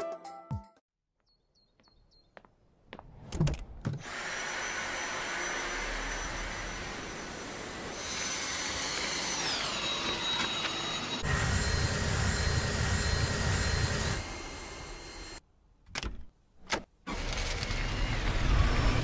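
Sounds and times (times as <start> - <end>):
vacuum cleaner high whine: 4.0 - 15.4
floor head deep whirr: 17.1 - 19.0.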